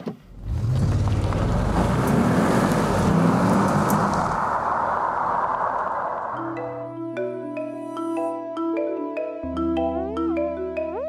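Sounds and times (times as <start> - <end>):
car engine accelerating hard: 0.3 - 6.3.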